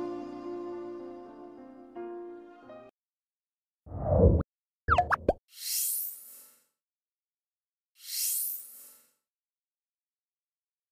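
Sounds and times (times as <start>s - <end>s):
rising bubbly pops: 4.9s - 5.4s.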